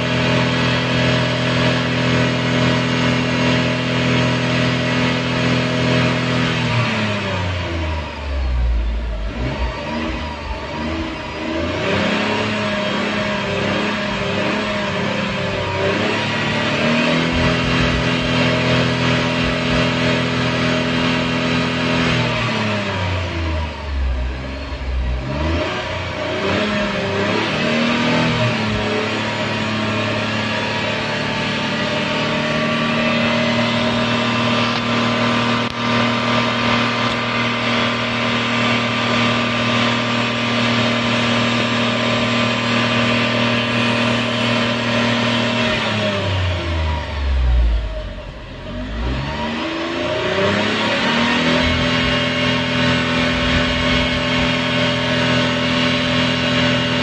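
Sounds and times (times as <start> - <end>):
car engine revving: 0.0 - 57.0.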